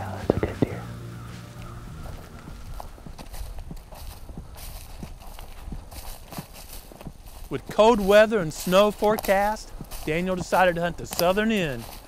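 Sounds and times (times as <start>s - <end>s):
held music note: 0.0s - 3.1s.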